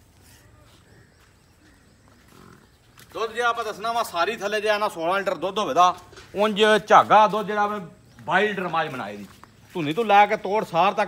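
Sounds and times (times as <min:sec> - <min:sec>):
faint animal sounds: 0:00.0 - 0:03.2.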